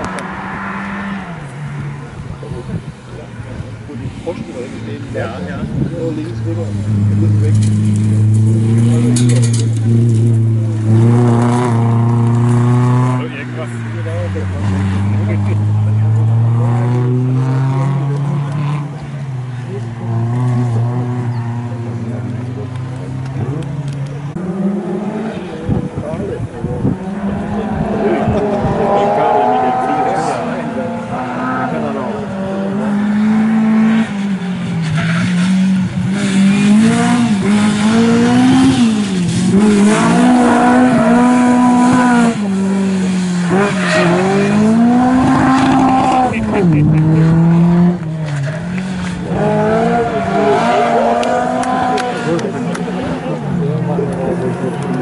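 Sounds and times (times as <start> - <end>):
rally car engine revving: 0.0 - 55.0.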